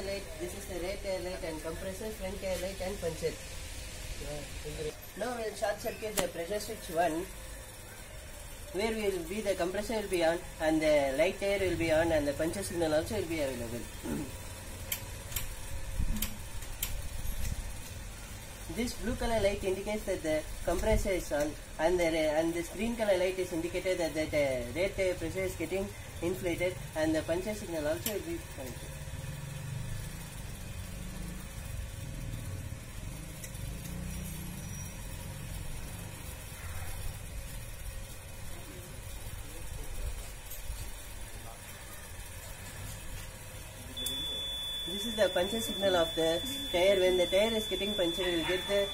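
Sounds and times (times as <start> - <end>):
low steady hum: 0.0 - 48.9
light sharp ticks: 33.4 - 34.1.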